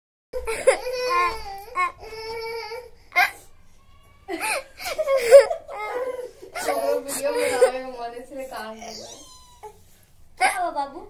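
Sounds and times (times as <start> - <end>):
girl crying: 0.4 - 8.1.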